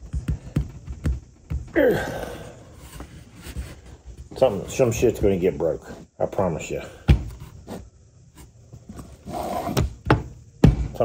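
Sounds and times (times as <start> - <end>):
man grunting with effort: 1.7 - 2.7.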